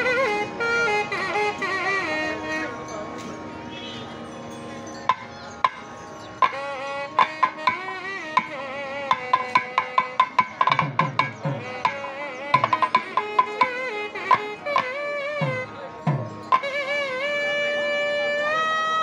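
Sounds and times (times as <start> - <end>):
wavering gliding melody: 0.0 - 19.0
hand-drum strokes: 5.1 - 17.0.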